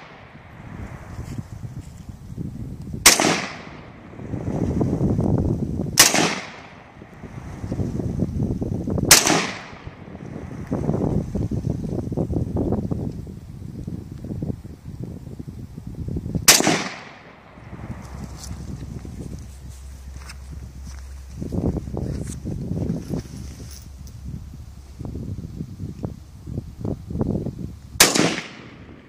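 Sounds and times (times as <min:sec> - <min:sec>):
wind rumbling on microphone: 0:00.0 - 0:29.0
rifle shots: 0:03.0 - 0:04.2, 0:06.0 - 0:07.0, 0:09.1 - 0:10.1, 0:16.4 - 0:17.7, 0:28.0 - 0:29.0.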